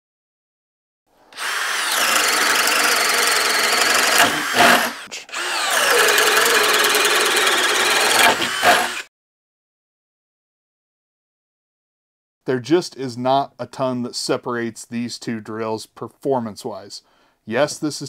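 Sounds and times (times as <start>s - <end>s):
drill boring into wood: 1.3s - 9.1s.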